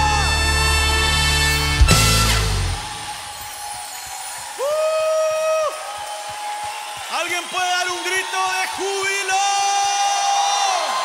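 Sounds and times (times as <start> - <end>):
worship band playing: 0.0 - 4.7.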